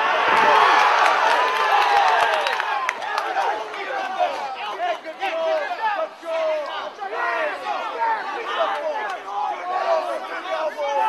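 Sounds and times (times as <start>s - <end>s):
crowd yelling and shouting: 0.0s - 11.0s.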